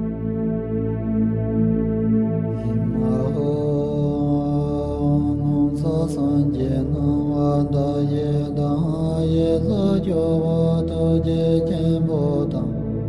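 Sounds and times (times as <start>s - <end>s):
voices chanting a mantra: 2.8s - 12.8s.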